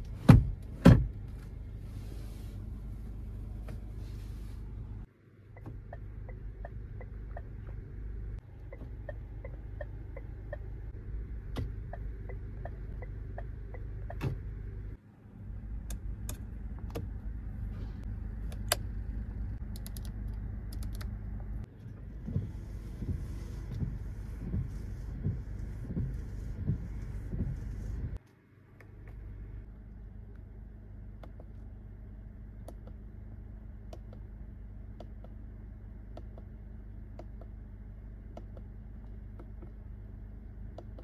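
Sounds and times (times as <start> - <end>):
windscreen wipers sweeping: 0.0 - 15.0, 19.3 - 28.2
low car cabin hum: 0.0 - 41.0
turn-signal relay ticking: 5.6 - 14.4.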